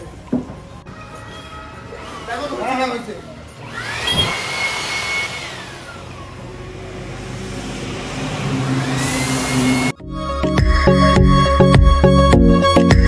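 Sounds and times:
electric air blower motor whine: 1.9s - 10.0s.

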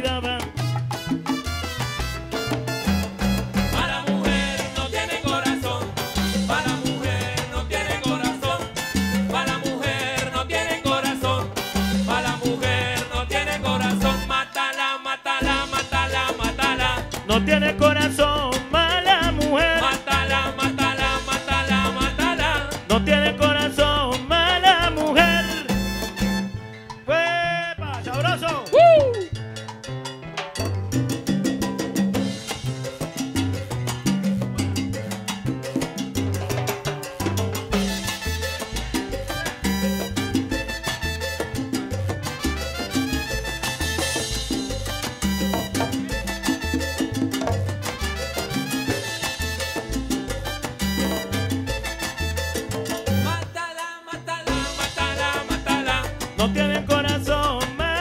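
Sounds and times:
salsa band playing: 0.0s - 58.0s.

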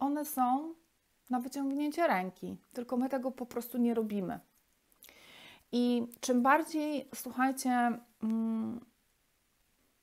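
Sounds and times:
woman humming: 8.2s - 8.9s.

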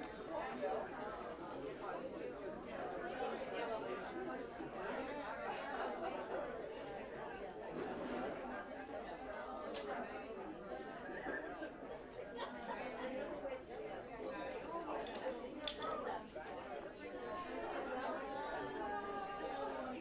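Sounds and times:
audience chatter: 0.0s - 20.0s.

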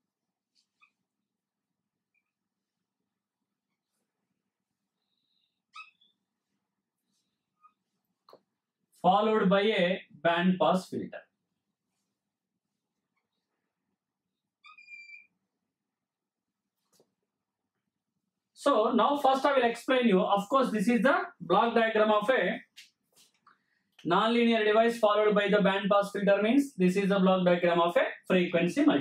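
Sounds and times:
marker squeaking on a whiteboard: 0.5s - 1.2s, 2.1s - 2.5s, 4.8s - 8.5s, 14.3s - 15.4s.

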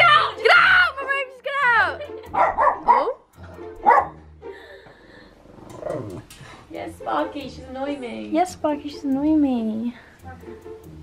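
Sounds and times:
dog barking sharply: 2.4s - 3.2s, 3.8s - 4.2s.

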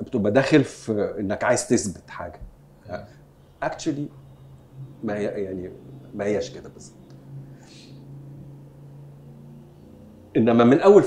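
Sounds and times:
low hum with light hiss: 0.0s - 11.0s.

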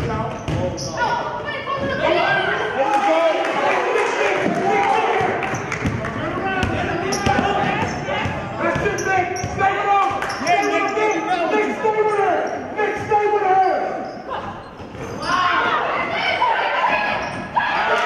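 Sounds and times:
basketball bouncing on gym floor: 0.0s - 0.8s, 6.6s - 9.6s.

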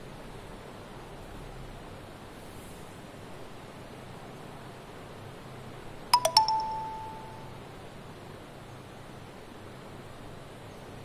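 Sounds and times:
three-note chime: 6.2s - 7.6s.

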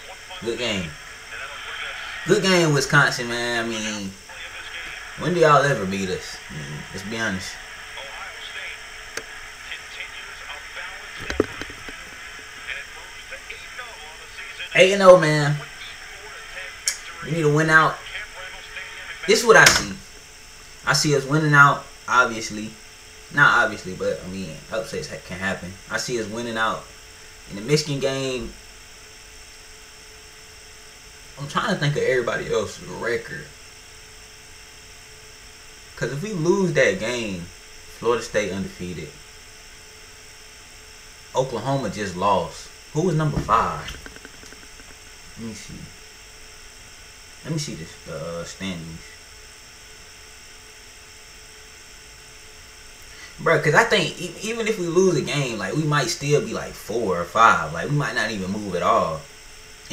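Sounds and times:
faint broadcast speech: 0.0s - 20.2s, 41.4s - 44.8s
electrical hum and hiss: 0.0s - 59.9s
low thump: 43.3s - 44.9s
sharp click: 43.4s - 45.0s.

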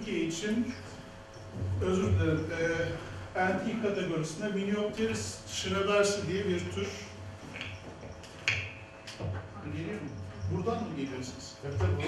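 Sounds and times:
low voices murmuring: 0.0s - 7.4s, 9.4s - 12.0s.

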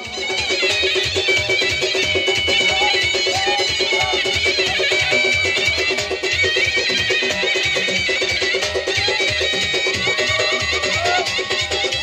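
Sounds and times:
band playing folk dance music: 0.0s - 12.0s
reedy lead melody: 0.0s - 12.0s.

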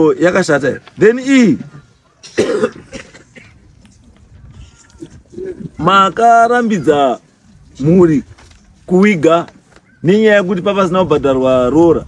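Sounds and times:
person coughing: 2.2s - 3.6s.

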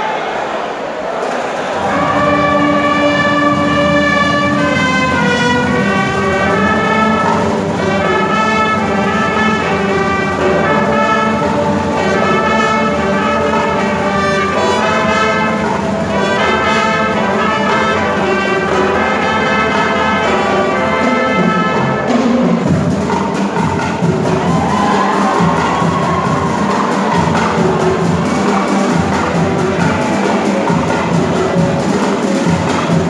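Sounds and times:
brass band playing: 1.2s - 33.0s.

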